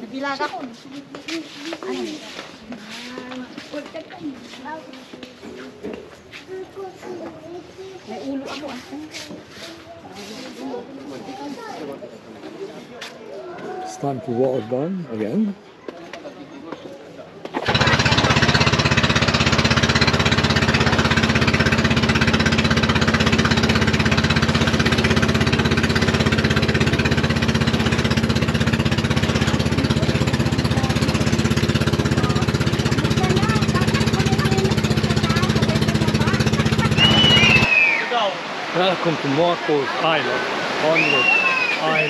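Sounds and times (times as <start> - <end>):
boat engine rattling drone: 17.6 - 37.8.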